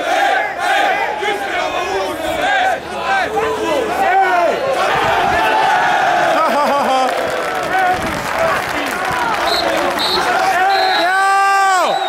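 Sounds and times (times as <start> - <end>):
crowd calling and shouting: 0.0 - 12.0.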